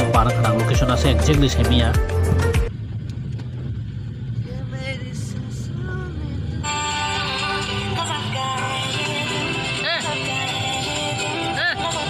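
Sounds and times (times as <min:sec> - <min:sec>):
music: 0:00.0 - 0:02.7, 0:06.6 - 0:12.0
car road rumble: 0:00.0 - 0:12.0.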